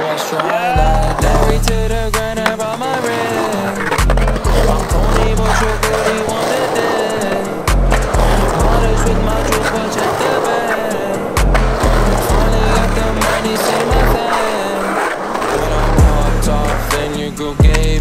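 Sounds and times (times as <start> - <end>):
hip-hop music with deep bass: 0.0 - 18.0
skateboard clacks: 0.0 - 18.0
skateboard wheels rolling on concrete: 0.0 - 18.0.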